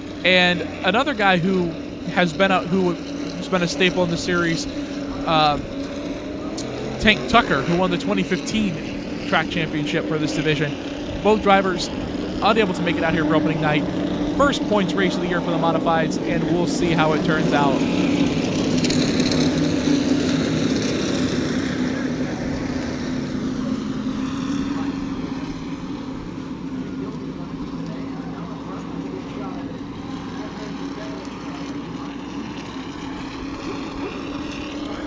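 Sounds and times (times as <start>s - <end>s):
race car engines droning: 0.0s - 35.0s.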